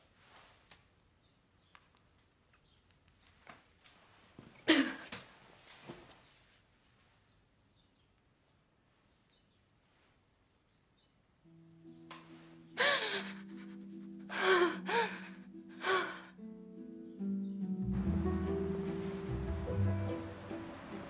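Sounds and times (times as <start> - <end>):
woman sobbing: 4.7 - 5.1, 12.8 - 16.4
soft film score music: 11.4 - 21.0.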